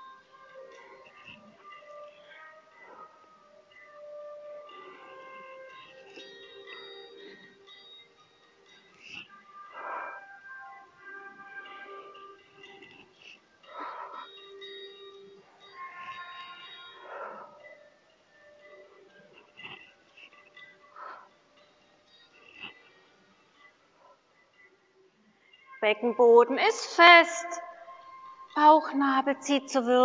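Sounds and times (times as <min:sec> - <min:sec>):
quiet background music: 0:00.0 - 0:30.0.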